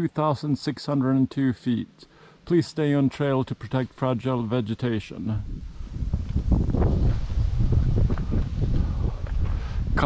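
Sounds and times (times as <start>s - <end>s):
wind buffeting microphone: 5.3s - 10.0s.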